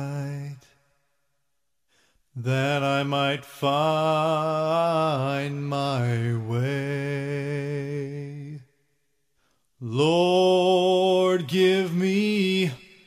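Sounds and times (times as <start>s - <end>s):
male a cappella group singing: 9.9s - 12.8s.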